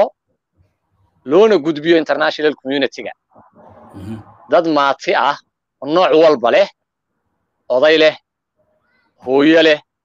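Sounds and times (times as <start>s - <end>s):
man speaking: 3.8s - 6.8s.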